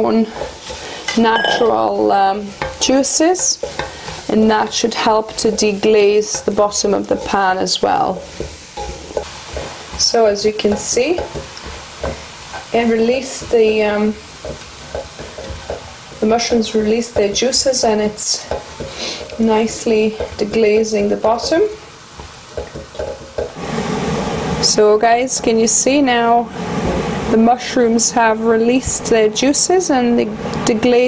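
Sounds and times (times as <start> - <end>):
spatula stirring in a pan: 0.0 - 23.6
steady hiss: 0.0 - 31.0
vegetables sizzling in a pan: 0.0 - 31.0.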